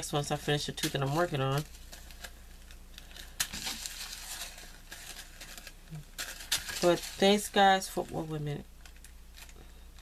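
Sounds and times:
plastic bags crinkling: 0:00.1 - 0:10.0.

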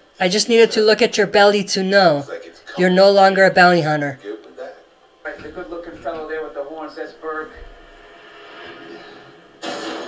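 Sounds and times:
faint background soundtrack: 0:00.0 - 0:10.0.

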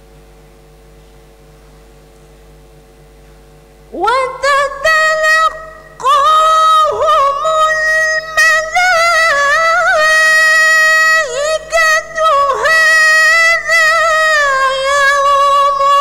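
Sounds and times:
woman reciting melodically: 0:03.9 - 0:16.0.

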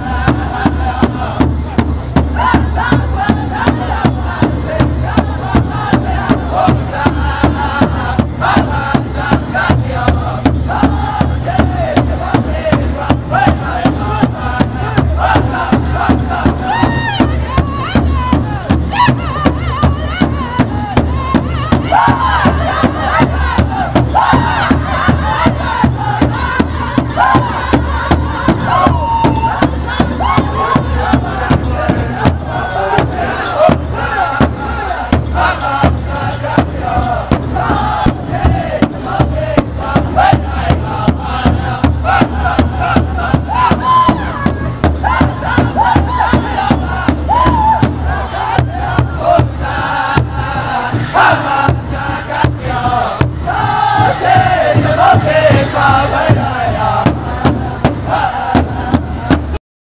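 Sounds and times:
group singing in high voices: 0:00.0 - 0:59.6
large drum beating: 0:00.0 - 0:59.6.

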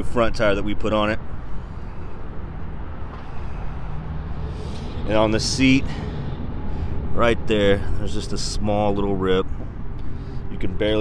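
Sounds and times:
outdoor background noise: 0:00.0 - 0:11.0
motor vehicle engine rumble: 0:00.9 - 0:11.0.

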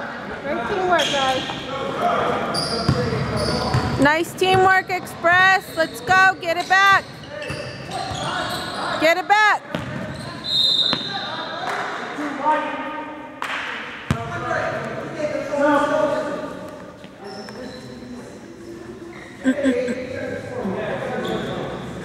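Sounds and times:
voices of players and spectators: 0:00.0 - 0:22.0
sneakers squeaking: 0:00.7 - 0:01.7, 0:02.4 - 0:09.0, 0:09.7 - 0:11.5, 0:16.9 - 0:20.0, 0:21.2 - 0:22.0
basketball bouncing on hardwood: 0:09.7 - 0:10.0
referee's whistle blast: 0:10.4 - 0:11.3.

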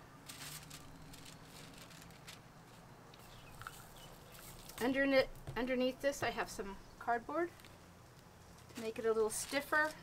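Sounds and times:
cardboard rustling: 0:00.2 - 0:02.9, 0:08.5 - 0:10.0.

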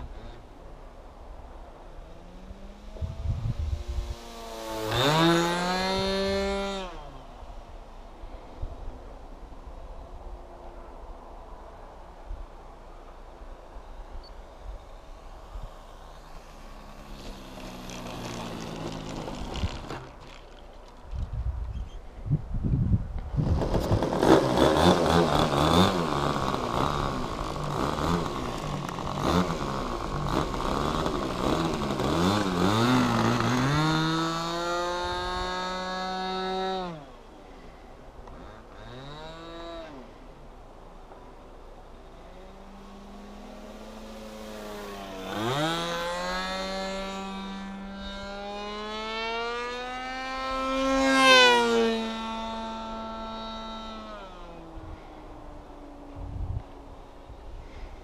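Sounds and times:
model airplane engine buzzing: 0:02.0 - 0:07.3, 0:13.9 - 0:21.0, 0:23.3 - 0:40.4, 0:41.7 - 0:56.4
propeller aircraft engine: 0:13.6 - 0:21.0, 0:23.7 - 0:33.6, 0:41.7 - 0:45.3.

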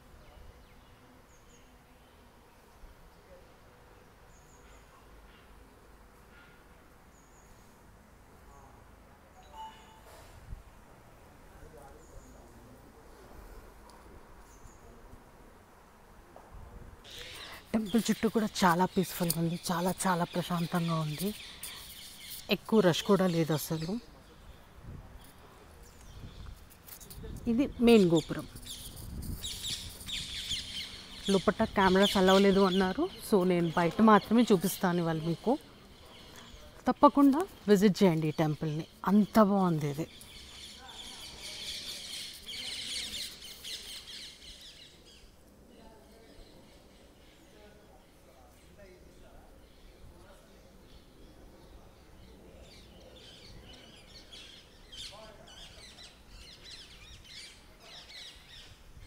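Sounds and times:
faint outdoor background noise: 0:00.0 - 0:59.0
small birds chirping: 0:17.1 - 0:59.0.

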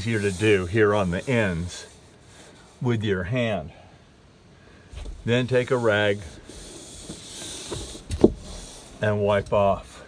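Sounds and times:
cloth rag wiping rubber: 0:00.0 - 0:03.4, 0:05.0 - 0:10.0.

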